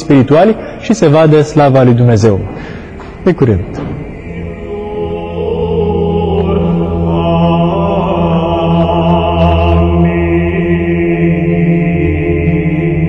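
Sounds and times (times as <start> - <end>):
voices chanting: 2.7 - 13.0.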